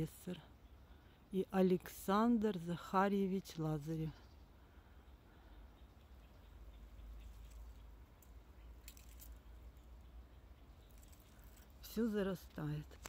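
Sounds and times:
faint low outdoor rumble: 0:00.0 - 0:13.0.

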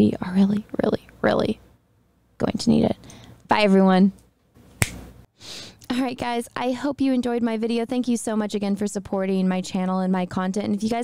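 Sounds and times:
woman speaking: 0:00.0 - 0:01.6, 0:02.4 - 0:04.2, 0:05.9 - 0:11.0
sharp click: 0:04.8 - 0:05.0.

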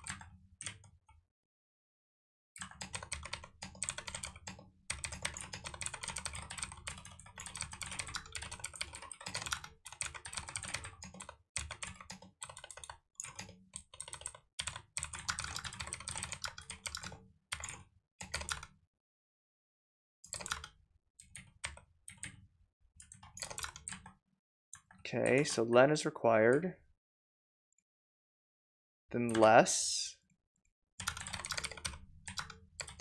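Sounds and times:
typing on computer keyboard: 0:00.0 - 0:01.0, 0:02.6 - 0:18.8, 0:20.3 - 0:22.4, 0:23.0 - 0:24.2, 0:24.8 - 0:25.0, 0:31.0 - 0:33.0.

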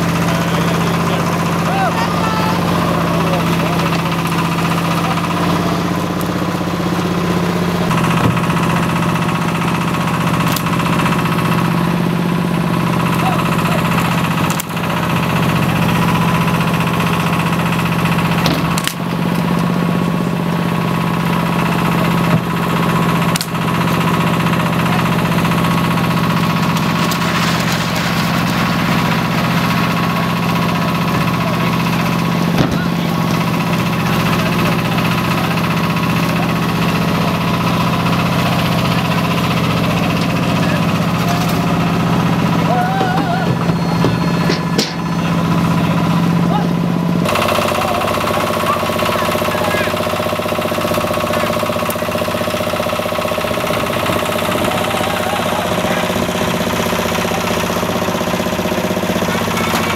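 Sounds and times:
engine humming: 0:00.0 - 0:59.9.

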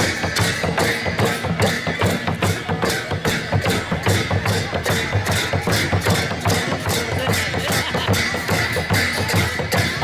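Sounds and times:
drum beaten in dance rhythm: 0:00.0 - 0:10.0.

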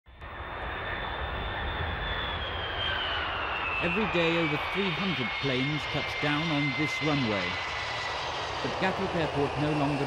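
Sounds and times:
jet airliner engines whining: 0:00.1 - 0:10.0.

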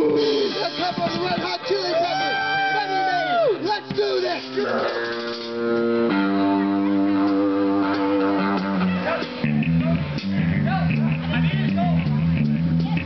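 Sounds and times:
electric guitar notes ringing: 0:00.0 - 0:13.0
rhythmic low riff: 0:00.0 - 0:13.0.

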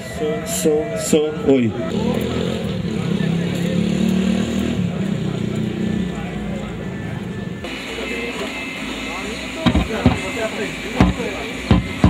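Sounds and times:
chatter of people talking: 0:00.0 - 0:12.0.

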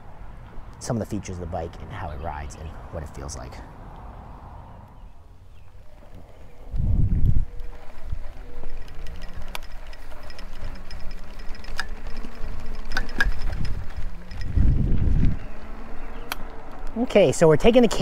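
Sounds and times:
wind buffeting microphone: 0:00.0 - 0:18.0
bike clicks and rattles: 0:05.8 - 0:18.0.

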